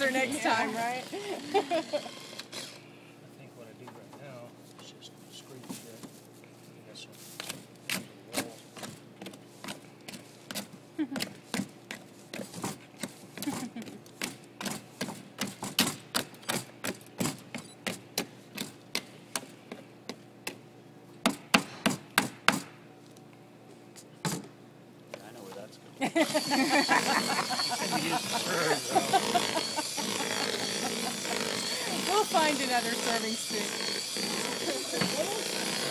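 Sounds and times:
electric hand mixer motor hum: 0:26.2 - 0:35.9.

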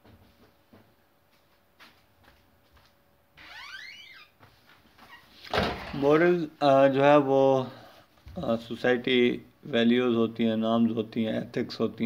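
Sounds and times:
person speaking: 0:05.8 - 0:12.0.

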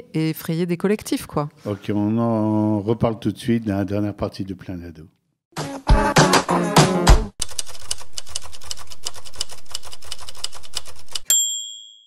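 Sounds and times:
typewriter keys clacking: 0:07.4 - 0:11.3.

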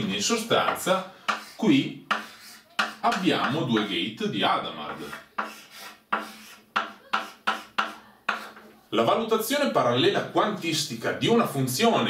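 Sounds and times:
chalk scraping on blackboard: 0:00.5 - 0:04.0, 0:04.8 - 0:08.7.

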